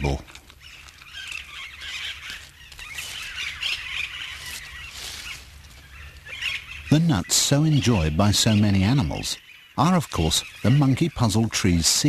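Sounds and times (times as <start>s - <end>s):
parakeets chattering and squawking: 0.0s - 12.0s.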